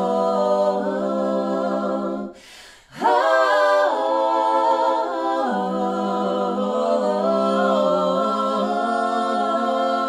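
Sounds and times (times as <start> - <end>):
vocal trio singing in harmony: 0.0 - 10.0.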